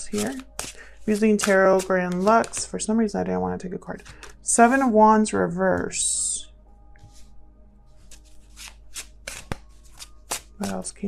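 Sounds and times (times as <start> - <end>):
cards shuffling: 0.0 - 2.7, 8.1 - 11.0.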